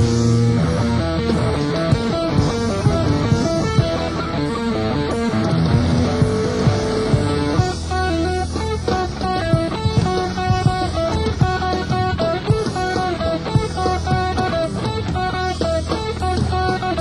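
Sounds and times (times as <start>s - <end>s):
electric guitar: 0.0s - 17.0s
live rock band playing: 0.0s - 17.0s.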